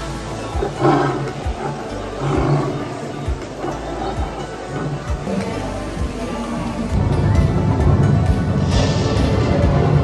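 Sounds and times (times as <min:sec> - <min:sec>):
background music with low beat: 0:00.0 - 0:10.0
big cat growls: 0:00.5 - 0:05.3.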